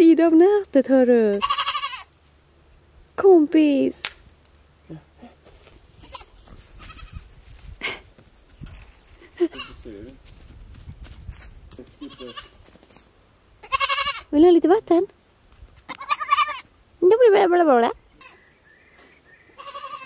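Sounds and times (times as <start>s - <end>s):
goat kids bleating: 1.3s - 2.1s, 5.9s - 7.2s, 9.3s - 9.9s, 12.0s - 12.7s, 13.6s - 14.3s, 15.9s - 16.7s, 18.2s - 18.4s, 19.5s - 20.0s.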